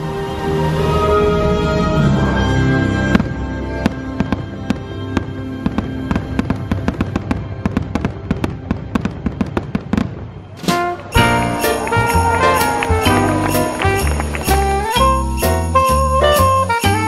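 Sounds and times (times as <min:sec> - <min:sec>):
fireworks cracking and popping: 0:05.7 - 0:15.6.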